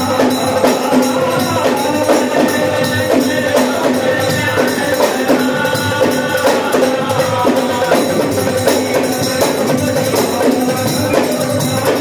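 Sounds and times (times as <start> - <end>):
earthen pot drums: 0.0 - 12.0
group of voices singing: 0.0 - 12.0
hand cymbals jingling: 0.0 - 12.0.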